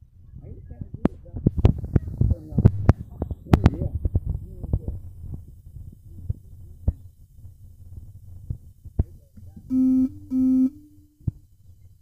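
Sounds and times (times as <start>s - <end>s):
low room hum: 0.0s - 12.0s
short loud buzzes: 9.7s - 11.2s.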